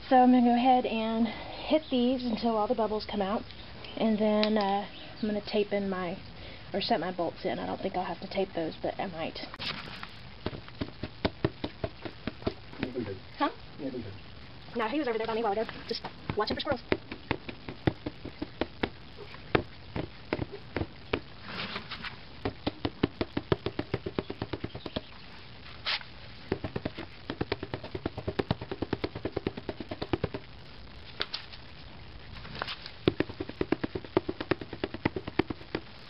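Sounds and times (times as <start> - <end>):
plastic bowls tapping on concrete: 10.4 - 13.0, 16.0 - 21.3, 22.4 - 25.1, 26.5 - 30.4, 33.0 - 35.9.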